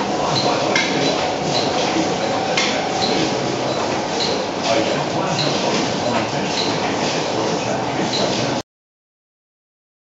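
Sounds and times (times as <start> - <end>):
machine running: 0.0 - 8.6.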